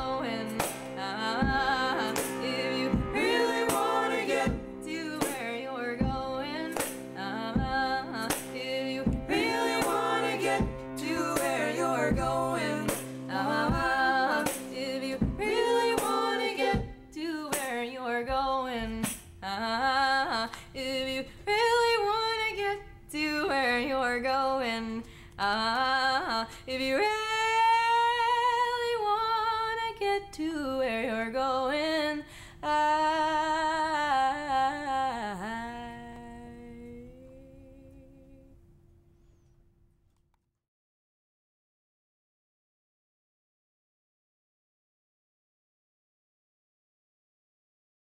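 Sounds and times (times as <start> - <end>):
harmonium: 0.0 - 16.6
cello: 0.0 - 16.9
woman singing: 0.0 - 38.6.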